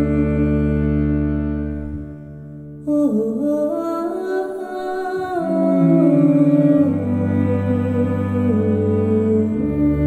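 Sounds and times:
woman singing wordless melody: 0:02.8 - 0:10.0.

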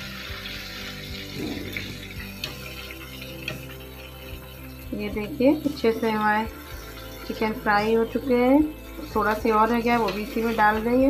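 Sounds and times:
background music: 0:00.0 - 0:11.0
chicken deep-frying in oil: 0:00.0 - 0:11.0.

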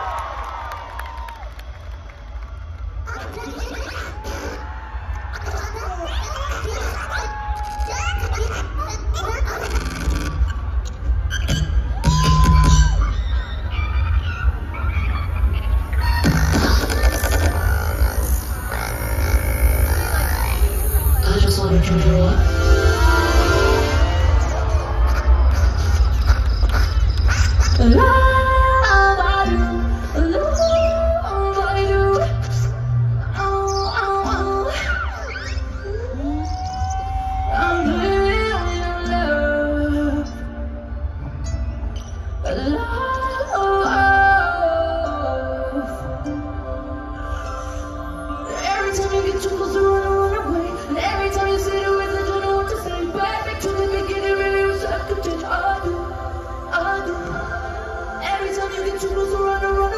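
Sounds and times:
heavy bass: 0:07.4 - 0:30.6
electronic pop music over pa: 0:09.6 - 0:59.9
synth chords: 0:11.5 - 0:36.4.

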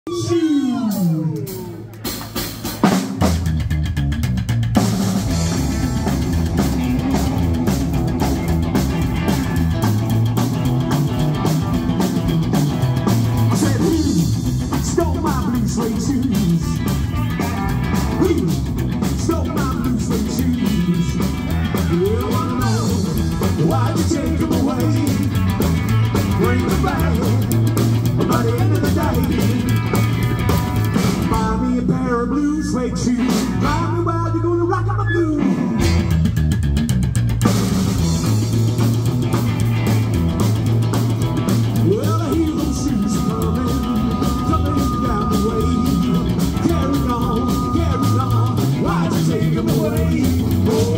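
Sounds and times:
drum kit: 0:00.1 - 0:31.9, 0:33.1 - 0:34.8, 0:35.4 - 0:50.9
electric guitar: 0:00.1 - 0:50.9
upright double bass: 0:03.2 - 0:50.9.

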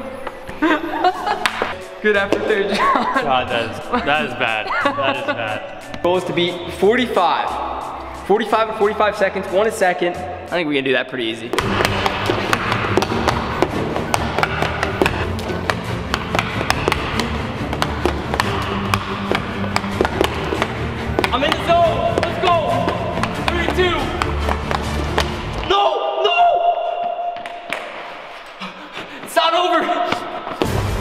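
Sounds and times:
background music with steady beat: 0:00.0 - 0:31.0
hockey stick and puck clacking: 0:01.4 - 0:02.6, 0:11.5 - 0:25.6, 0:27.4 - 0:28.2.

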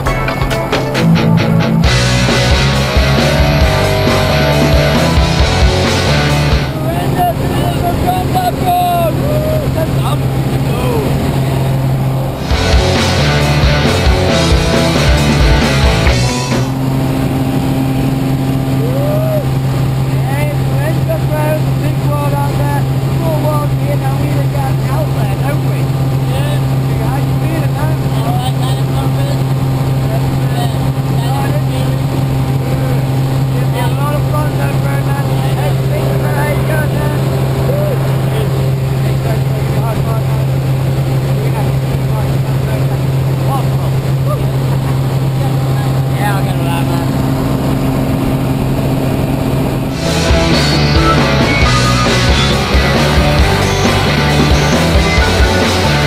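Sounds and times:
rock music: 0:00.0 - 0:07.2, 0:11.7 - 0:18.9, 0:49.8 - 0:56.0
plane engine drone: 0:00.0 - 0:56.0
passengers whooping shouts: 0:07.0 - 0:09.9, 0:18.7 - 0:19.5
faint voices: 0:18.7 - 0:48.5.

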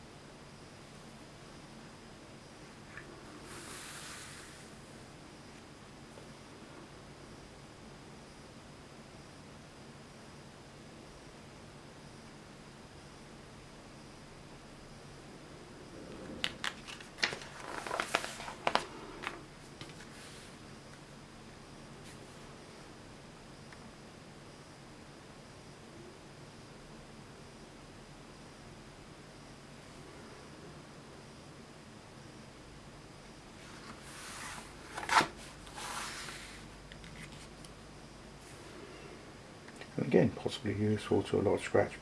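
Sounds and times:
paper page rustling and flicking: 0:16.3 - 0:20.5, 0:33.8 - 0:37.6
sharp paper crackle: 0:16.4 - 0:20.0.

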